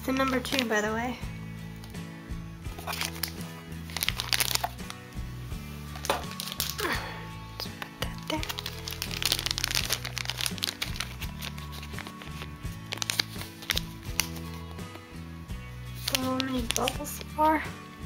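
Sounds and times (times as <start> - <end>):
background music with low notes: 0.0 - 18.0
plastic bag crinkling: 2.7 - 5.0, 5.9 - 14.8, 16.0 - 17.3.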